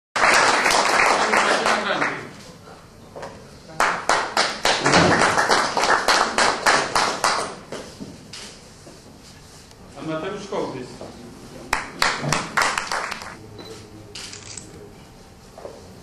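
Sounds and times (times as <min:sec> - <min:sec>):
audience applauding: 0:00.2 - 0:02.3, 0:03.8 - 0:07.6, 0:11.7 - 0:13.4
close handclaps: 0:00.2 - 0:02.3, 0:03.8 - 0:07.7, 0:11.7 - 0:13.4.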